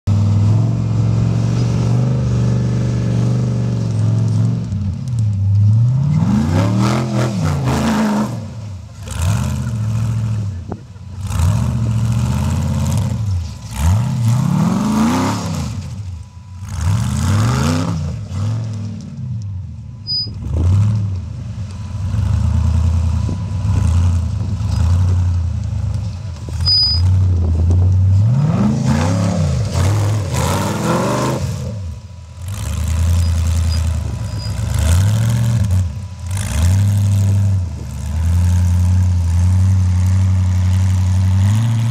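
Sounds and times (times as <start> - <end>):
buggy engine revving: 0.0 - 41.9.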